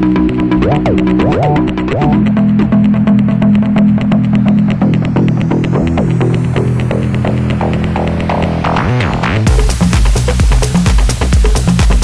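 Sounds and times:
electro house music: 0:00.0 - 0:12.0.

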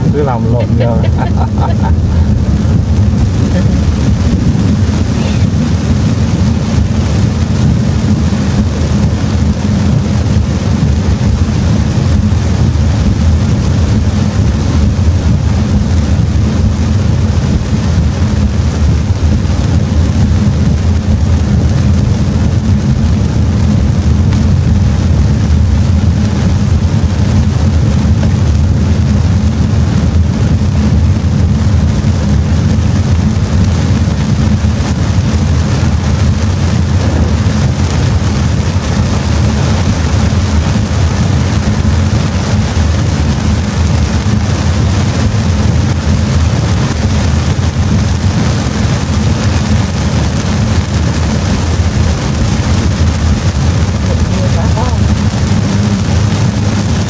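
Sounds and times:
car driving low rumble: 0:00.0 - 0:57.0
heavy rain on car: 0:00.0 - 0:57.0
tyres hissing on wet road: 0:00.0 - 0:57.0.

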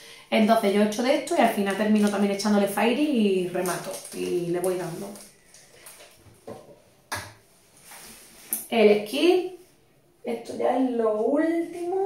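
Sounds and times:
person speaking: 0:00.3 - 0:05.4
plastic bottles being handled: 0:03.4 - 0:08.6.

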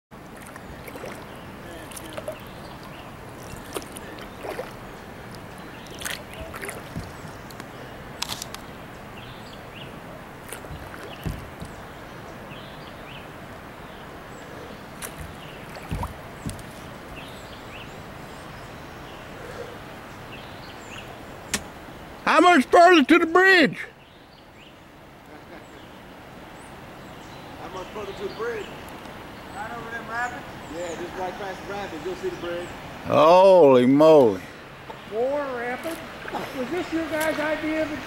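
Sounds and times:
kayak paddle splashing: 0:00.2 - 0:19.2, 0:34.8 - 0:38.0
moving water hiss: 0:00.2 - 0:38.0
paddle knocks: 0:05.9 - 0:07.7, 0:10.5 - 0:11.9, 0:15.0 - 0:17.0.

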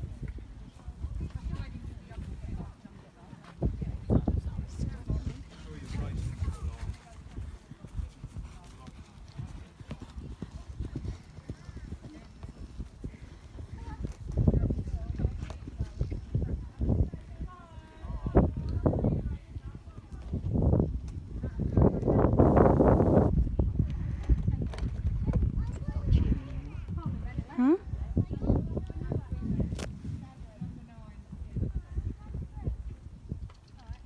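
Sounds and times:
horse hooves striking ground: 0:04.8 - 0:16.8.

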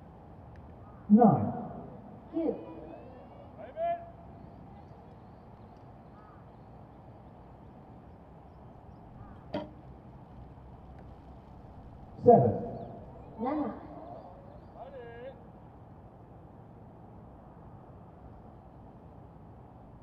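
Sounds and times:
short calls: 0:12.0 - 0:15.5.

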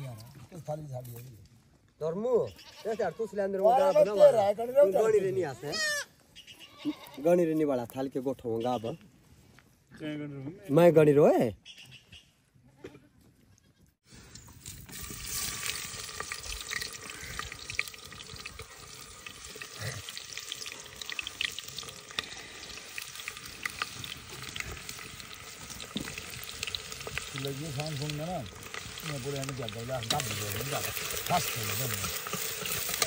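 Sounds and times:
food frying in hot oil: 0:14.3 - 0:33.0.

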